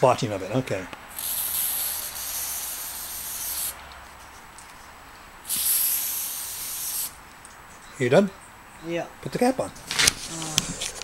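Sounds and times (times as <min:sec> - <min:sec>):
spray paint can hissing: 0:01.1 - 0:03.8, 0:05.4 - 0:07.2.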